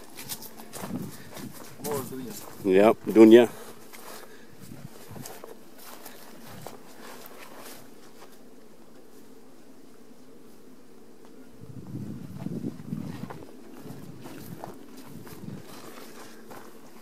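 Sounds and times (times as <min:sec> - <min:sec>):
faint rustles and clicks: 0:00.0 - 0:09.4, 0:12.2 - 0:17.0
honeybees buzzing: 0:00.0 - 0:17.0.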